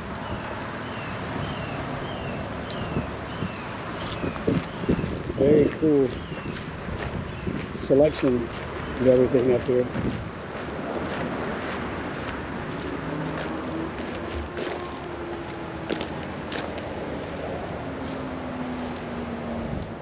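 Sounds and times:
distant vehicle engine hum: 0.0s - 20.0s.

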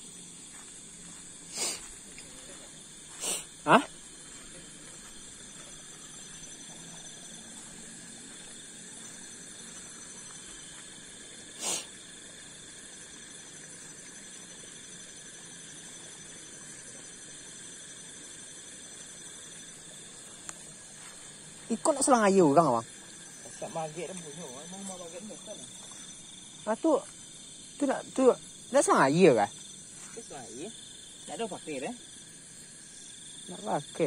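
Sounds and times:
crickets chirping: 0.0s - 34.0s.

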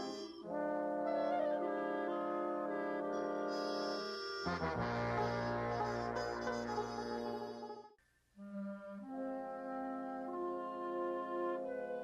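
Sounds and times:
brass background music: 0.0s - 12.0s.

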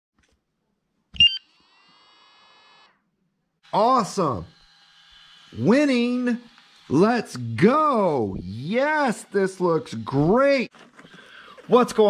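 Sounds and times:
high electronic beeps: 1.2s - 1.4s.

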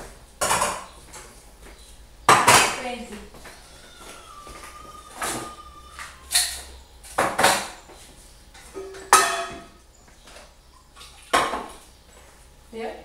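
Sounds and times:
metal pots and lids clattering: 8.7s - 9.8s.

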